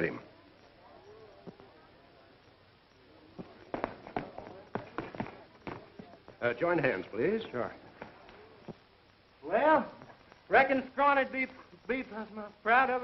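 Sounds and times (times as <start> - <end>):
faint background voices: 0.0 - 10.6.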